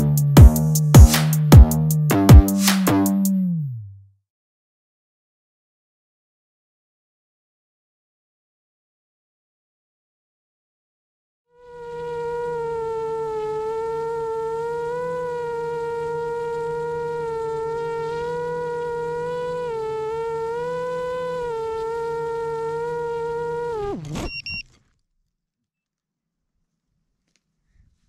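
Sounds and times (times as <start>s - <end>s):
quadcopter motors buzzing: 11.6s - 24.6s
short high beeps: 24.3s - 24.7s.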